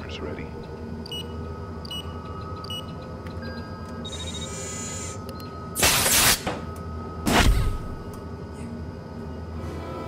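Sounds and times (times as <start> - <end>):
steady hum: 0.0 - 10.0
electronic beeps: 1.0 - 5.7.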